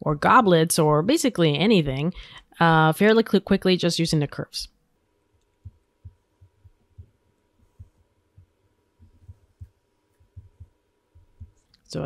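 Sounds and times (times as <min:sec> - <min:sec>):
faint electrical hum: 0:00.0 - 0:12.0
faint low thumps: 0:05.6 - 0:11.6.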